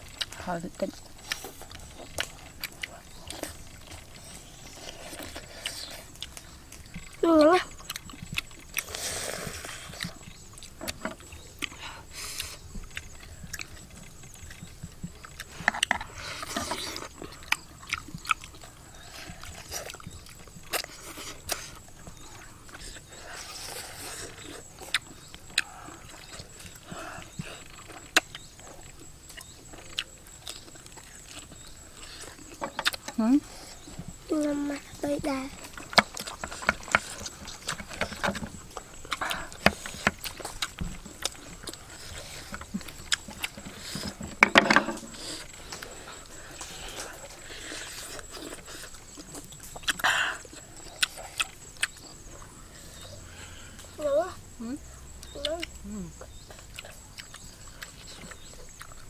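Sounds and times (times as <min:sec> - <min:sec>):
chewing and lip-smacking: 0:00.0 - 0:44.4, 0:45.0 - 0:54.3, 0:55.2 - 0:59.0.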